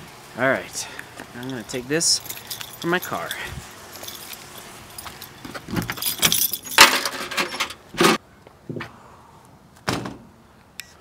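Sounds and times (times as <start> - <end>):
car keys jangling: 1.4 - 7.3.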